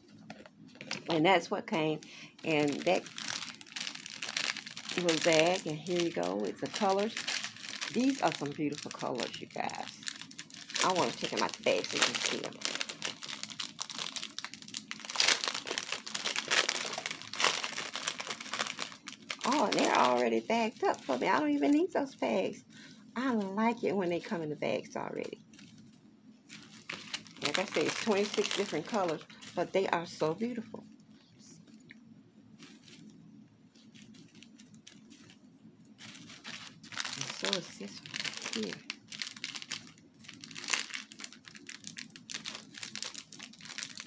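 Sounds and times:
plastic bag crinkling: 0:00.2 - 0:22.0, 0:25.1 - 0:30.2, 0:32.6 - 0:44.0.

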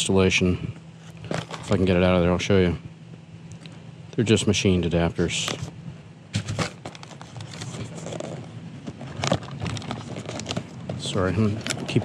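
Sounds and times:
cardboard box rustling and scraping: 0:01.0 - 0:01.9, 0:06.4 - 0:12.0.

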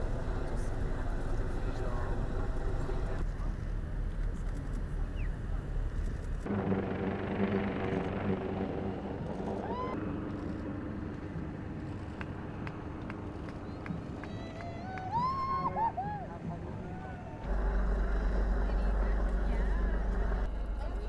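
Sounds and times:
aircraft machine hum: 0:00.0 - 0:21.0
low wind rumble: 0:00.0 - 0:21.0
outdoor crowd murmur: 0:00.0 - 0:21.0.

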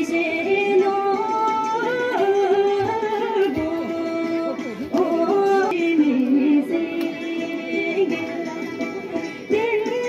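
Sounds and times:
women singing folk song: 0:00.0 - 0:10.0.

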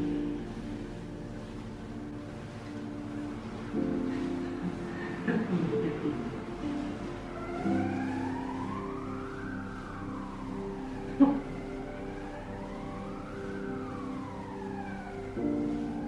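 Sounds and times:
background music sustained chords: 0:00.0 - 0:16.0
siren wailing: 0:02.8 - 0:16.0.

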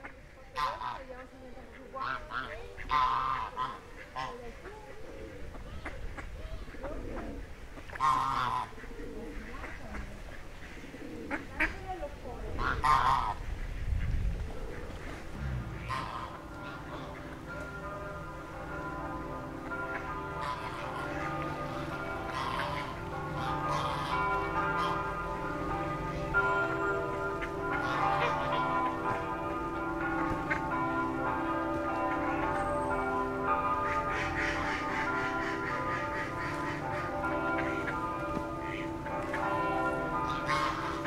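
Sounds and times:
goose honking: 0:00.0 - 0:13.5, 0:14.7 - 0:41.0
bells ringing: 0:15.8 - 0:41.0.

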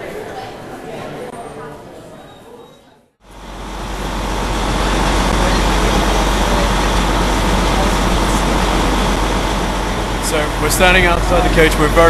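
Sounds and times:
city street traffic: 0:03.2 - 0:12.0
low engine rumble: 0:03.2 - 0:12.0.

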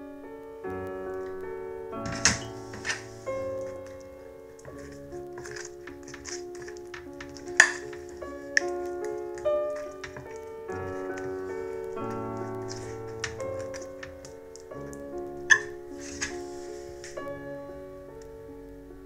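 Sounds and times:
soft piano music: 0:00.0 - 0:19.0.

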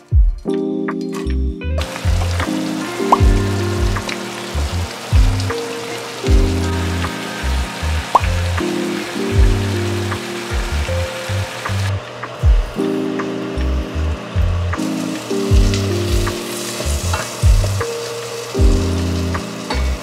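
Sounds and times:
soft background music: 0:00.0 - 0:20.0.

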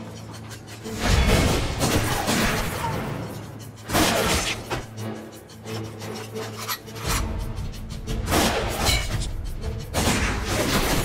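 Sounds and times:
tense music with low drone: 0:00.0 - 0:11.0.

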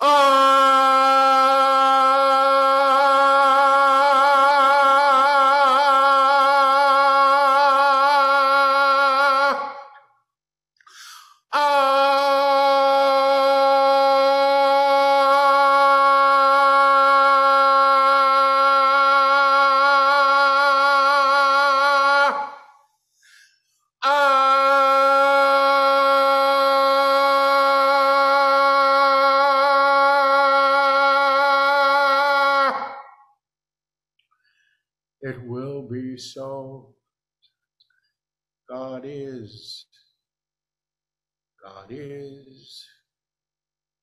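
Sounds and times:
man breathing: 0:10.8 - 0:11.5, 0:22.9 - 0:23.9, 0:34.3 - 0:34.9.

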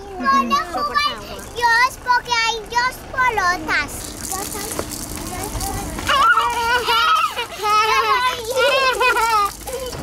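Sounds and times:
young child crying: 0:06.1 - 0:10.0.

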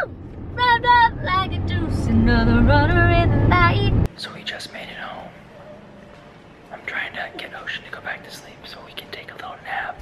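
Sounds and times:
man whispering: 0:04.2 - 0:05.3, 0:06.7 - 0:10.0.

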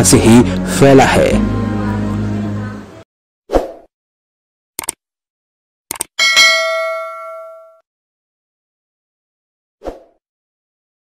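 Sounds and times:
mouse click sound effects: 0:05.9 - 0:06.1
bell ding: 0:06.2 - 0:07.8.

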